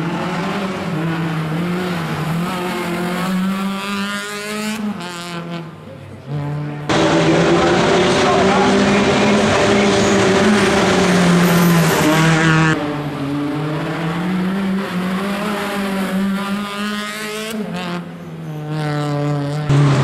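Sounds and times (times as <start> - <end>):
rally car engine revving: 0.0 - 20.0
loud rushing noise: 6.9 - 12.8.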